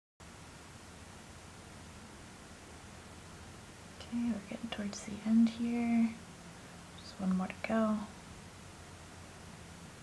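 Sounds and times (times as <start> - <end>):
room hiss: 0.2 - 10.0
woman speaking softly: 4.0 - 6.2, 7.0 - 8.2.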